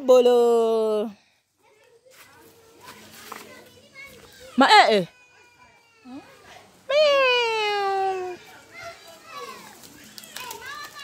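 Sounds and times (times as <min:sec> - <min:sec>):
distant children talking: 0:01.4 - 0:11.0.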